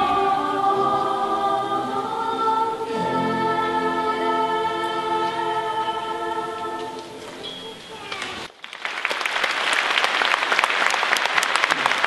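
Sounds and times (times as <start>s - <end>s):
choir holding a chord: 0.0s - 7.4s.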